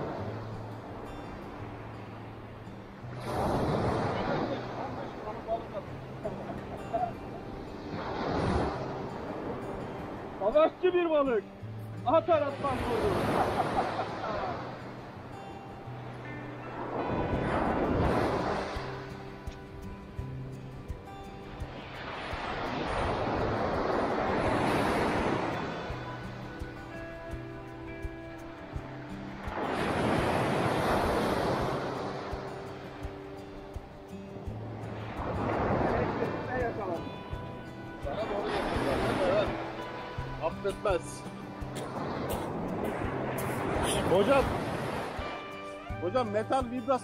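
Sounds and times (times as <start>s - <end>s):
background music with sustained tones: 0.0s - 47.0s
surf breaking on pebble beach: 3.1s - 5.6s.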